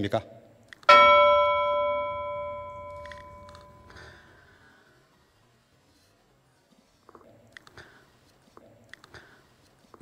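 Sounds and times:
bell-like chime ringing: 0:00.9 - 0:04.2.

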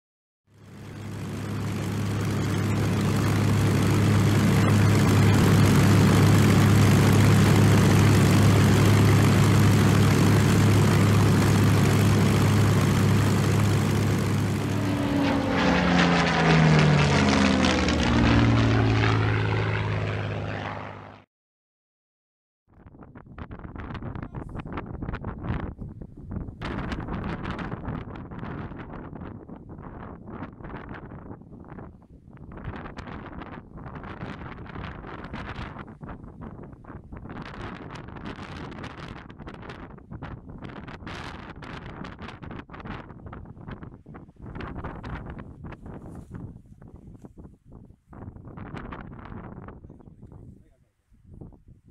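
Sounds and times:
propeller plane flying past: 0:00.5 - 0:21.3
gusty wind on microphone: 0:22.8 - 0:51.9.

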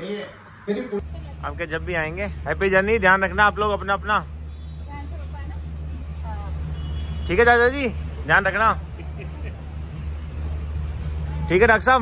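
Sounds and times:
car engine idling: 0:01.0 - 0:12.0.

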